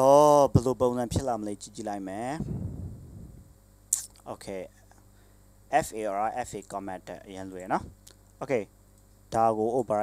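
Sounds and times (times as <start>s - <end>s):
faint noise: 0.0s - 8.7s.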